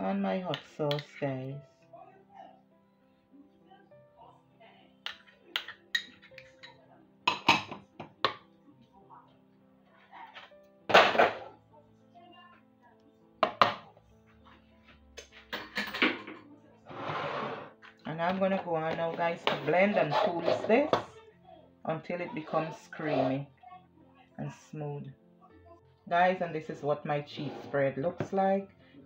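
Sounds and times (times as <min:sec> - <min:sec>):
soft background music: 0:00.0 - 0:29.0
spoon knocking plastic bowl: 0:13.4 - 0:13.9.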